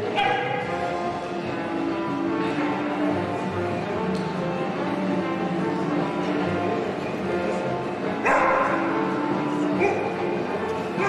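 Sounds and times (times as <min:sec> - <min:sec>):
dog barking: 0:08.2 - 0:08.9, 0:09.8 - 0:10.2.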